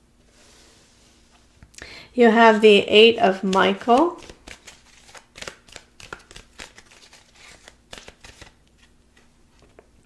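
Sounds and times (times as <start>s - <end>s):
cards being shuffled: 3.4s - 9.9s.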